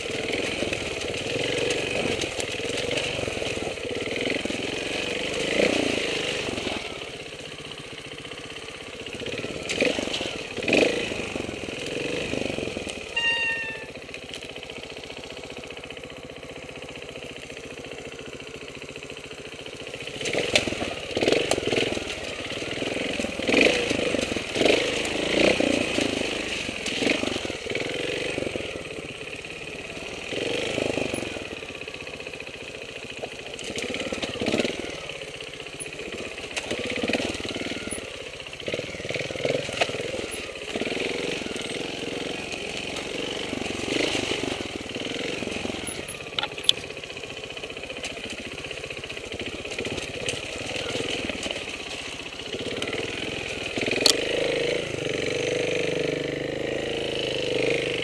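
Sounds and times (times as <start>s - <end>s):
motorcycle engine revving: 0.0s - 58.0s
short high-pitched call: 13.1s - 14.0s.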